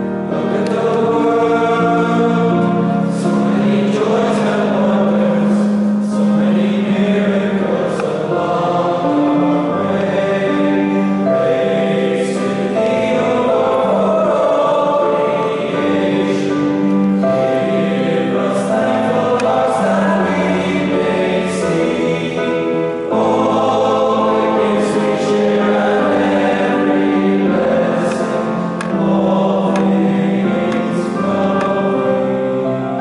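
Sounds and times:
choir singing in parts: 0:00.0 - 0:33.0.

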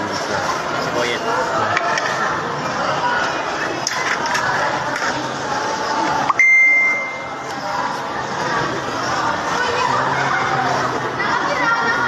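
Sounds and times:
high steady beep: 0:06.3 - 0:07.4.

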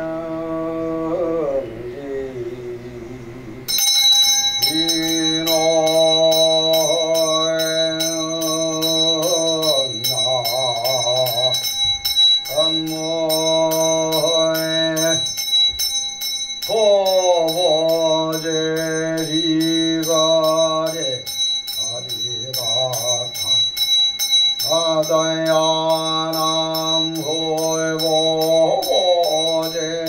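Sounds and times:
monk chanting in held notes: 0:00.0 - 0:11.9, 0:12.5 - 0:15.4, 0:16.6 - 0:23.7, 0:24.6 - 0:30.0
small handbell ringing: 0:03.7 - 0:30.0.

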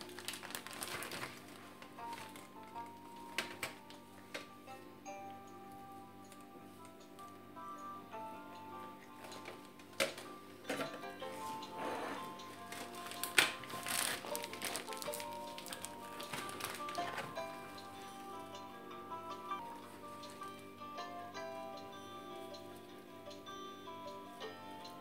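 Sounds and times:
hands handling dry pasta: 0:00.0 - 0:03.8, 0:12.5 - 0:17.3
background music with held notes: 0:00.0 - 0:25.0.

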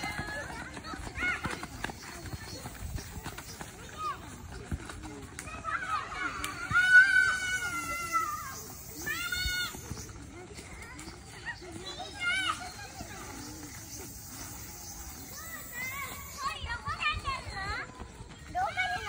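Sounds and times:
children shouting and squealing: 0:00.0 - 0:19.0.

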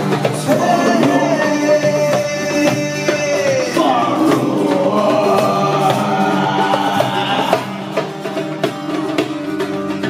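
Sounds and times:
voices singing together: 0:00.0 - 0:08.7
acoustic guitar: 0:00.0 - 0:10.0
drum strikes: 0:00.0 - 0:10.0
plucked string instrument: 0:00.0 - 0:10.0.

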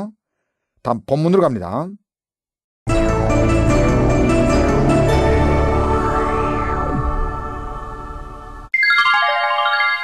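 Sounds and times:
descending electronic chime: 0:08.7 - 0:10.0.

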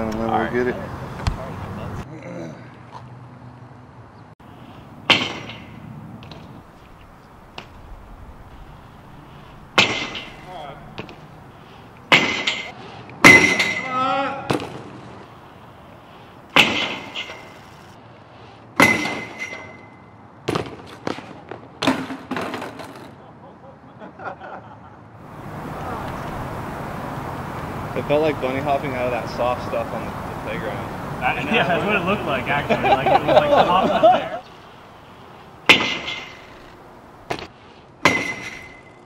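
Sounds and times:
bike hitting metal pole clanks: 0:05.1 - 0:06.5, 0:09.8 - 0:11.2, 0:12.1 - 0:14.1, 0:16.5 - 0:17.6, 0:18.8 - 0:20.0, 0:35.7 - 0:39.0
person shouting: 0:13.8 - 0:14.5.

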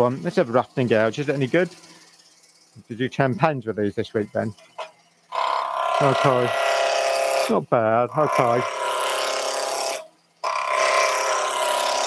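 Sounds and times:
lathe hum: 0:00.0 - 0:03.6, 0:04.3 - 0:12.0
wood lathe gouge cutting: 0:04.8 - 0:12.0.

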